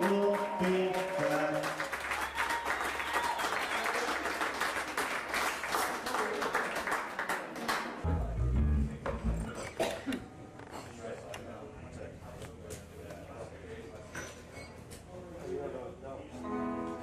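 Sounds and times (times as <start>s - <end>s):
audience clapping: 0.0s - 8.1s
low bass notes: 8.0s - 9.8s
amplifier hum: 8.1s - 10.4s.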